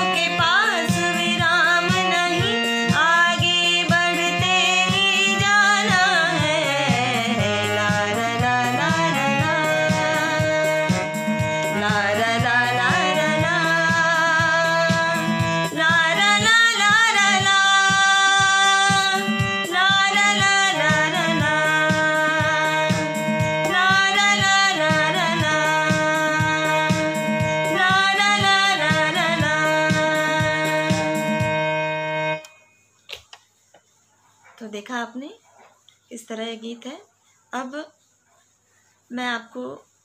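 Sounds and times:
steady beat: 0.0s - 31.9s
keyboard chords: 0.0s - 32.8s.

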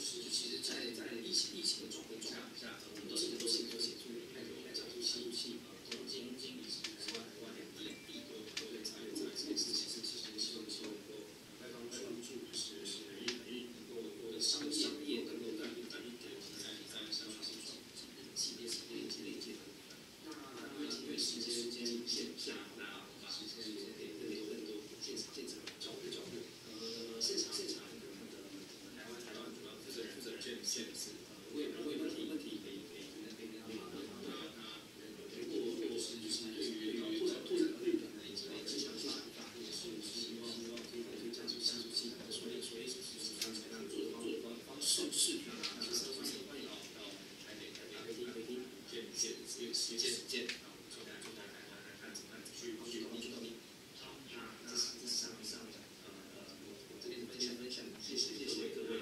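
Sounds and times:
man speaking over speakers: 0.0s - 59.0s.

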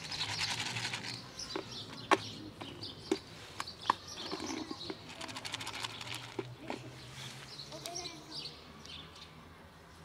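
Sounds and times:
small birds chirping: 0.0s - 9.5s.

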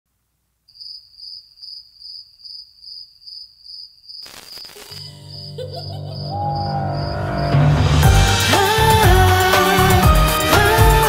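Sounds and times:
cricket chirping: 0.7s - 7.6s.

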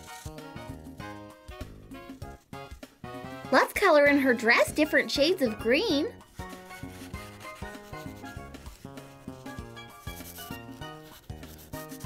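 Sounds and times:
marker rubbing on paper: 0.0s - 0.4s, 6.1s - 12.0s
light background music: 0.0s - 12.0s.

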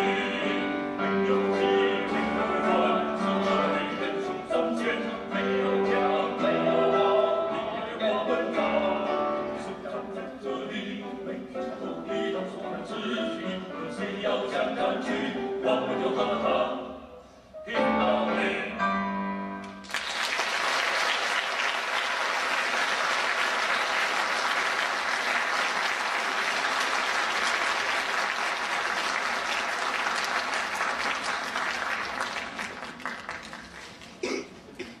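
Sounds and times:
audience applauding: 19.8s - 34.3s.

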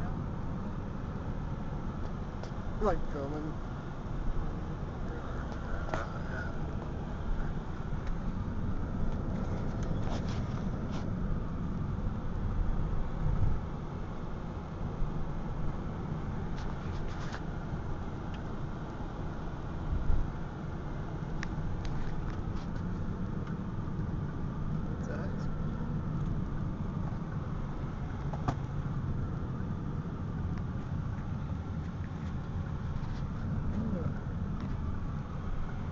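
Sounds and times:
car road and engine noise: 0.0s - 35.9s.

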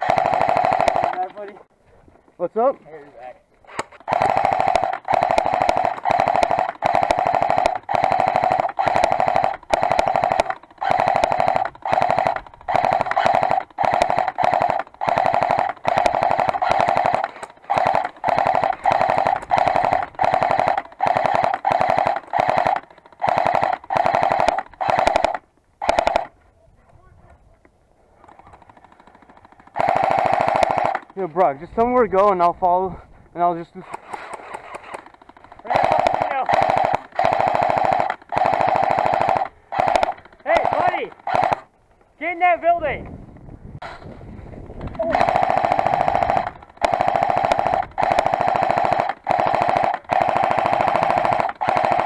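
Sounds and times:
airsoft gun full-auto bursts: 0.0s - 1.5s, 3.7s - 26.4s, 28.4s - 32.4s, 33.8s - 41.7s, 45.0s - 52.0s.

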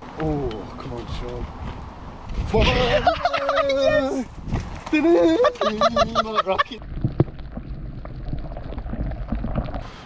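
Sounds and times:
small underwater clicks and ticks: 6.8s - 9.9s
muffled underwater rumble: 6.8s - 10.0s.

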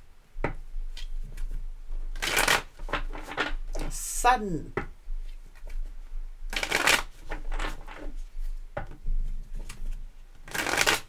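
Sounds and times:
cards being shuffled: 2.2s - 4.0s, 6.5s - 8.2s, 9.6s - 11.0s.

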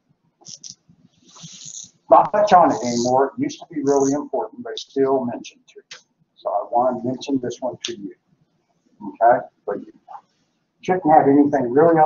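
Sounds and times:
person speaking: 0.5s - 0.7s, 1.3s - 8.1s, 9.0s - 10.2s.

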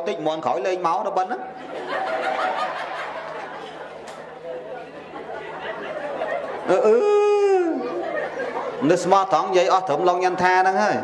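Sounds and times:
audience laughing and chattering: 1.3s - 10.0s.

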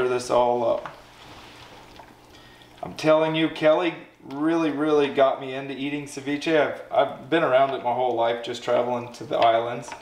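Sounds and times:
spoon stirring wet food in bowl: 7.6s - 10.0s.

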